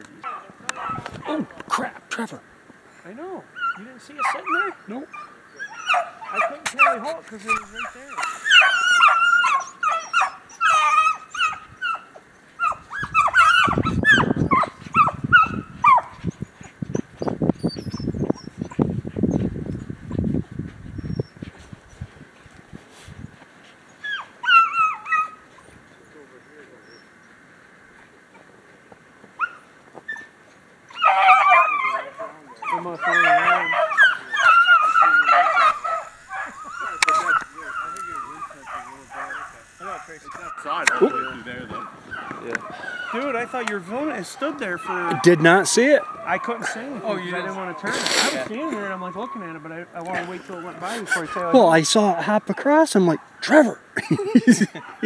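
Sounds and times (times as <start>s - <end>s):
hounds baying: 0.1s - 2.0s, 3.4s - 18.9s, 23.9s - 26.1s, 29.4s - 55.0s.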